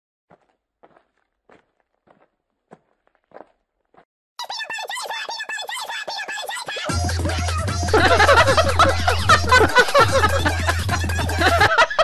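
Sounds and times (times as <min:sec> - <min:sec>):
faint footsteps: 0:00.3 - 0:04.1
loud music: 0:06.9 - 0:11.8.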